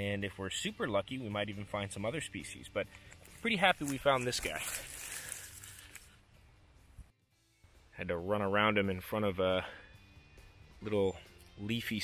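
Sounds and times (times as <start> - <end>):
rustling of dry leaves and brush: 2.9 - 6.2.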